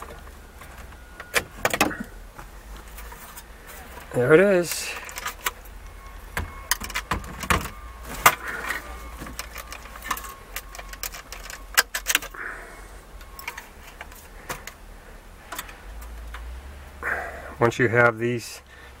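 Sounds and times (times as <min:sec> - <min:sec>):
clicks and metal clinks: 0:06.5 - 0:12.4.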